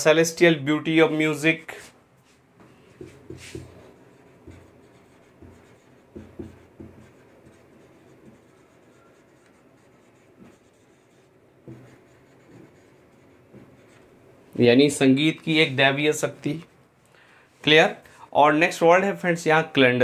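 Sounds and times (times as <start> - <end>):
marker writing on whiteboard: 2.6 - 14.2.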